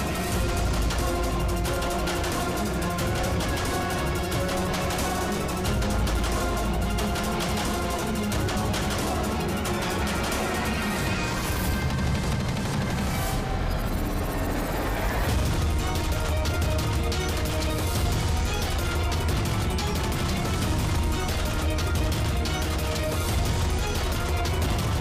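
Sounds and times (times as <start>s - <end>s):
background music with heavy bass: 0.0s - 25.0s
rising sweep: 9.3s - 17.0s.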